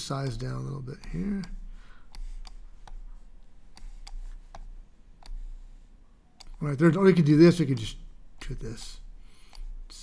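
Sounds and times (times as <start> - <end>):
faint low hum: 0.0 - 10.0
computer mouse clicking: 0.2 - 3.1, 3.7 - 5.5, 6.4 - 6.7, 8.4 - 9.7.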